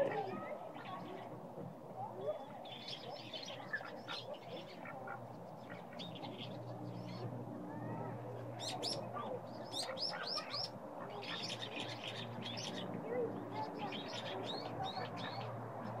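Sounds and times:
small birds chirping: 0:02.3 - 0:07.4, 0:08.5 - 0:16.0.

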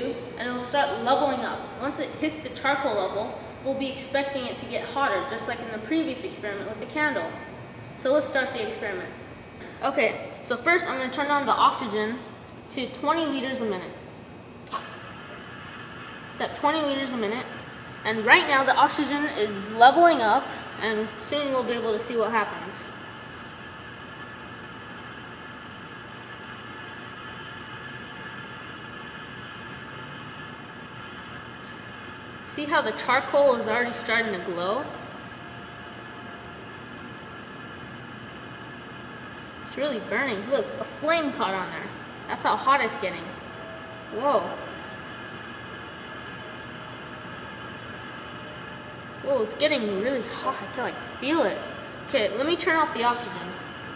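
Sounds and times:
faint steady whine: 0:00.0 - 0:53.9
oxygen hissing through tube: 0:14.6 - 0:53.9.

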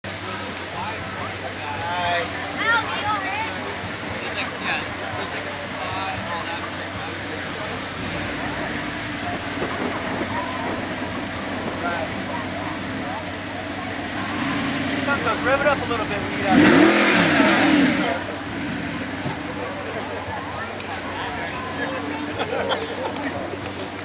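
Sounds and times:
car engine running at low revs: 0:00.0 - 0:24.0
people chattering: 0:00.0 - 0:24.0.

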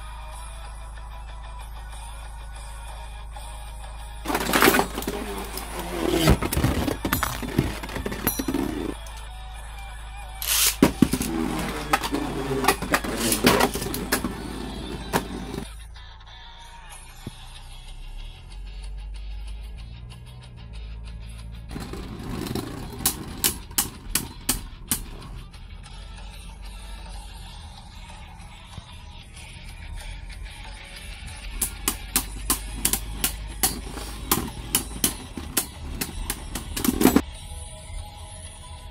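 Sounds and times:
spinning top on plastic floor: 0:10.4 - 0:15.7, 0:21.7 - 0:25.4, 0:31.6 - 0:37.2.

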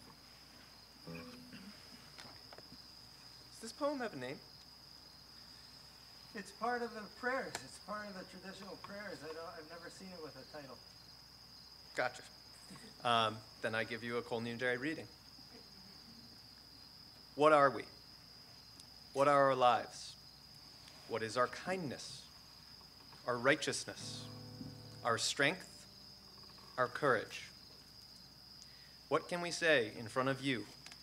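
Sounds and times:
crickets chirping: 0:00.0 - 0:31.0.

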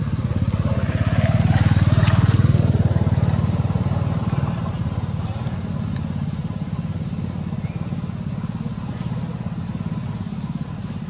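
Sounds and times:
small engine running: 0:00.0 - 0:11.0.

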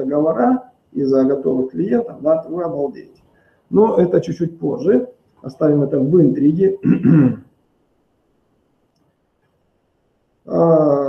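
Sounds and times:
man speaking: 0:00.0 - 0:07.4, 0:10.5 - 0:11.0.

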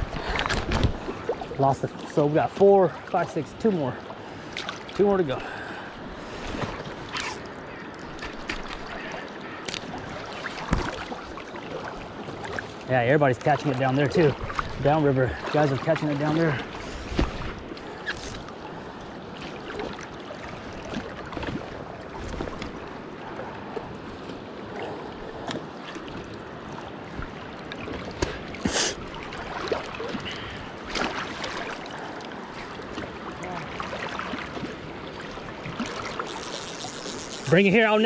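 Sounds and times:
river current rushing: 0:26.0 - 0:38.0
fishing reel clicks: 0:36.2 - 0:37.5.

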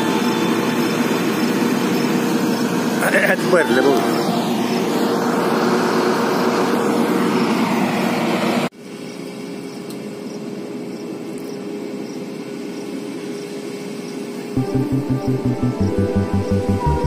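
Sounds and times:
combine harvester engine drone: 0:00.0 - 0:08.7
distant combine harvester drone: 0:00.0 - 0:17.0.

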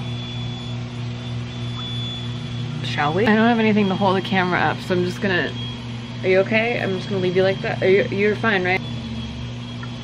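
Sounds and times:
hot tub pump humming: 0:00.0 - 0:10.0.

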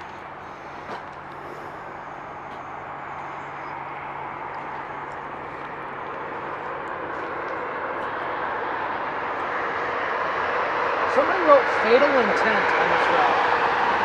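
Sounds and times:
rushing vehicle noise: 0:00.0 - 0:14.0.

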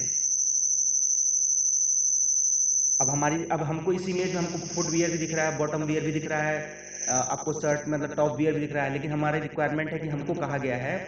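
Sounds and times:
high-pitched insect trill: 0:00.0 - 0:08.4
faint low hum: 0:03.0 - 0:11.0.

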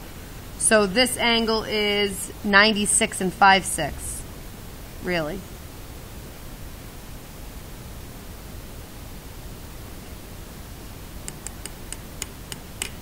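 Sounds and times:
room noise hiss: 0:00.0 - 0:13.0.

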